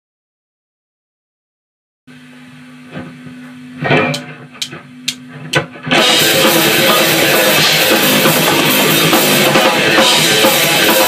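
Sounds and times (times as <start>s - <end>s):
rock band playing: 4.0s - 11.0s
drumsticks clicking together: 4.1s - 5.6s.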